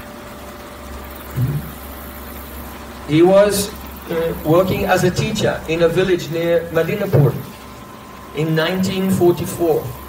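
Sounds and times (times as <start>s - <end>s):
low machine hum: 0.0s - 10.0s
short low vocal sound: 1.3s - 1.8s.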